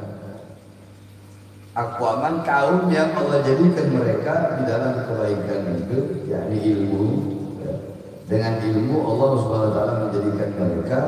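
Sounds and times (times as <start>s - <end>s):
low steady hum: 0.0s - 11.0s
man speaking over microphone: 1.8s - 11.0s.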